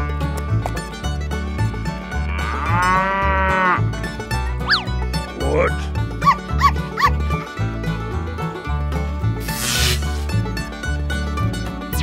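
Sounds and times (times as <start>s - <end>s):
cow mooing: 2.1s - 3.8s.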